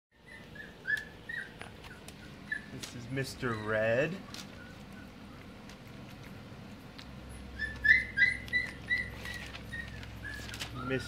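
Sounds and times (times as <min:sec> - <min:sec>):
puppies squeaking: 0:00.1 - 0:06.6, 0:07.2 - 0:11.0.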